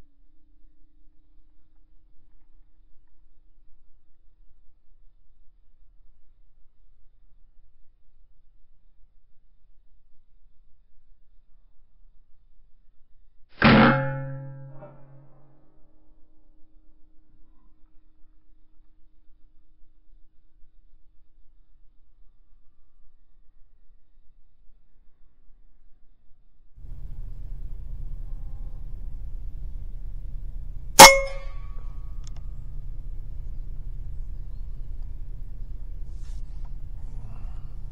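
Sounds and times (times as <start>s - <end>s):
metallic ringing: 13.6s - 15.1s, 31.0s - 32.3s.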